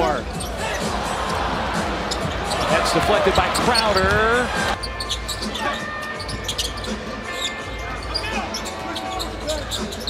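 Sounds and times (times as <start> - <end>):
arena crowd noise: 0.0 - 10.0
sneakers squeaking: 0.2 - 10.0.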